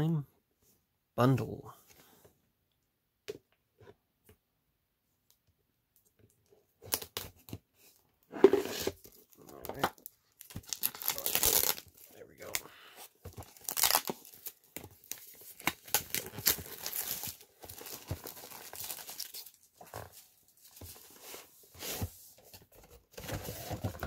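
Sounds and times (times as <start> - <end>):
plastic shrink-wrap tearing: 10.4 - 12.6, 13.4 - 19.6.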